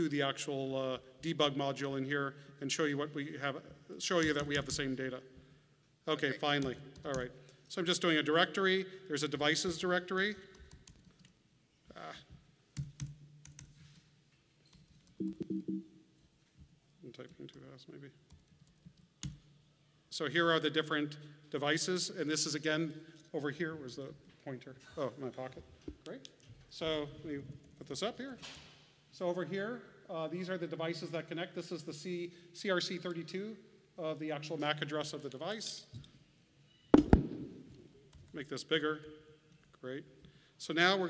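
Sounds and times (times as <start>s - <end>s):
sharp knocks with low thud: 37.0s - 37.6s.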